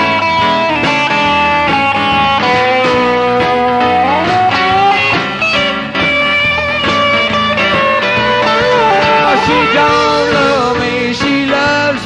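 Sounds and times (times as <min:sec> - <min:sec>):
rock band playing: 0:00.0 - 0:12.0
steady drum beat: 0:00.0 - 0:12.0.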